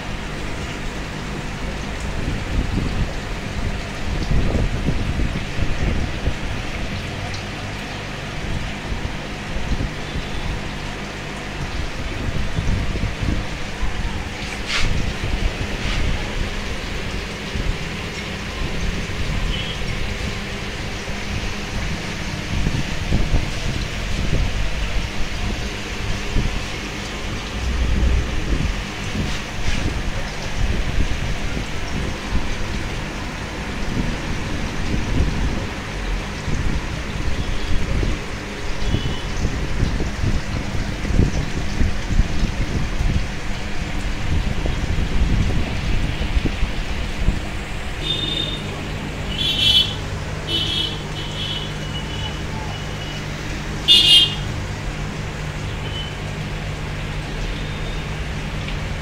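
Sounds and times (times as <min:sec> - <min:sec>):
aquarium bubbling and splashing: 0:00.0 - 0:59.0.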